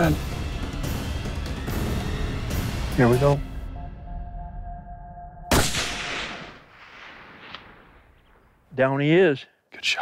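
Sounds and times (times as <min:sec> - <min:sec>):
rifle shot with echo: 0:05.5 - 0:08.4.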